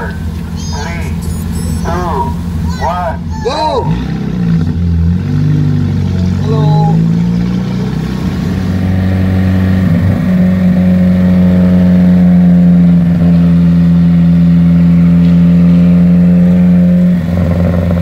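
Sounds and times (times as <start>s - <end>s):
car engine pulling steadily: 0.0s - 18.0s.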